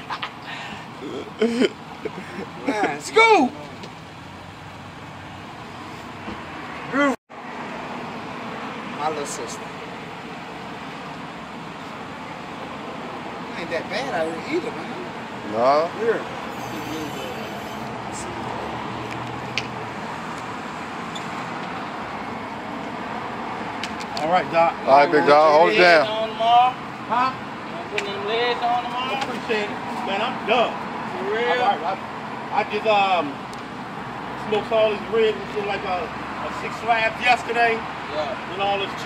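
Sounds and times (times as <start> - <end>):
road traffic hum: 0.0 - 39.0.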